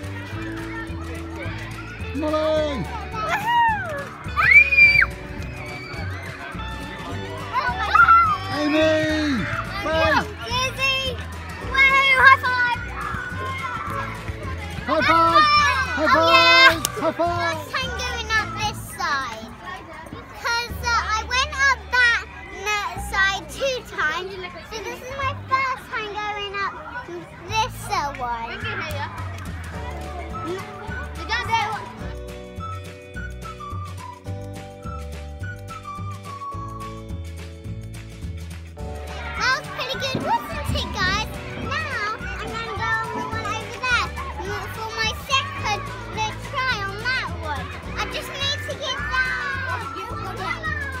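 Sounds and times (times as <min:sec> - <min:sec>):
background music: 0:00.0 - 0:19.7, 0:27.4 - 0:51.0
children shouting: 0:00.0 - 0:32.2, 0:39.0 - 0:51.0.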